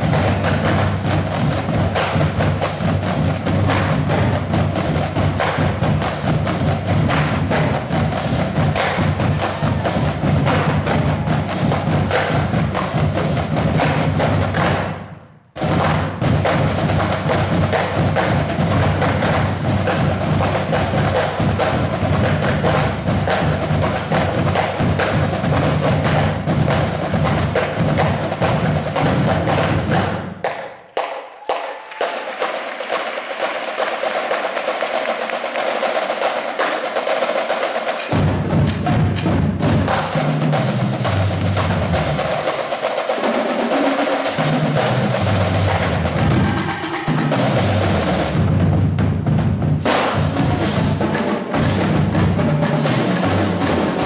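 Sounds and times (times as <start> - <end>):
bass drums: 0.0 - 15.0, 15.6 - 30.2, 38.1 - 42.5, 44.4 - 54.0
snare drums: 0.0 - 54.0
tenor drums: 0.0 - 54.0.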